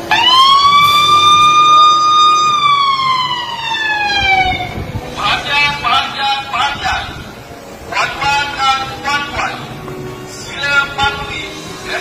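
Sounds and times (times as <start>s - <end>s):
siren wailing: 0.1s - 4.9s.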